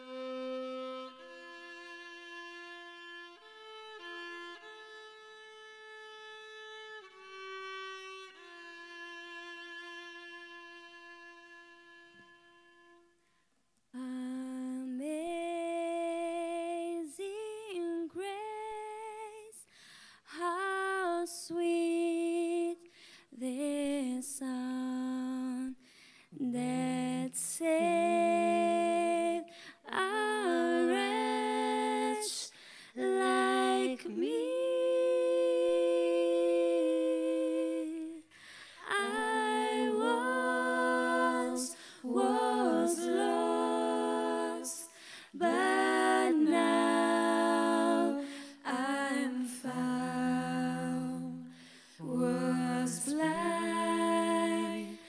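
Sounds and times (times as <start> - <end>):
woman singing gospel solo: 26.4 - 38.2, 38.8 - 55.0.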